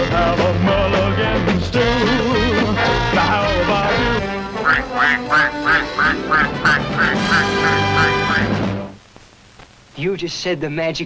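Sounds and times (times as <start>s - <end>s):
band music: 0.0s - 8.9s
goose honking: 4.5s - 8.6s.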